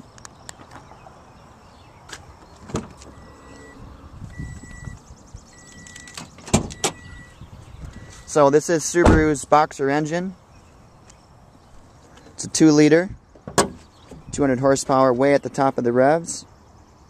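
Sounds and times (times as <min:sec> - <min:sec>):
car door warning chime beeping: 0:03.1 - 0:07.4, 0:08.0 - 0:08.4.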